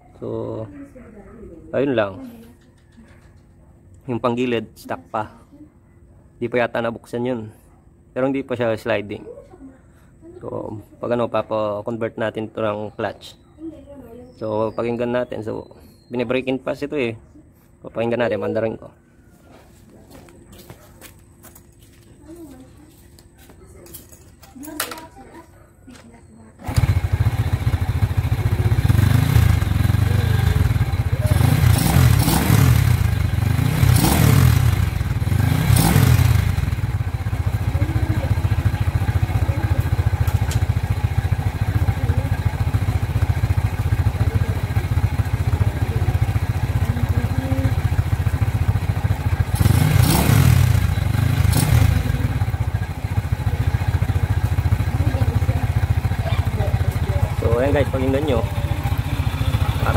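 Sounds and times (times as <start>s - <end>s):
motorcycle engine starting and idling: 23.8s - 25.2s, 26.5s - 59.9s
motorcycle throttle blips: 26.0s - 59.9s.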